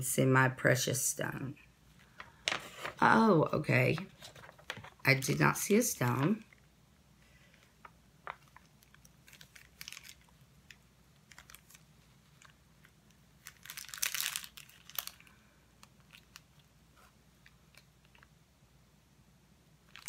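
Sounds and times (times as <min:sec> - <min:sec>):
plastic bag crinkling: 0:08.2 - 0:16.7.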